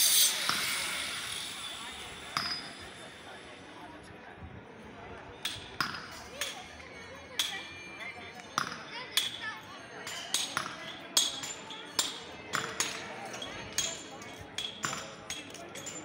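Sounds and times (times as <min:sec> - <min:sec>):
sharp metallic clinks: 0:00.0 - 0:03.6, 0:09.2 - 0:16.0
faint voices: 0:00.0 - 0:16.0.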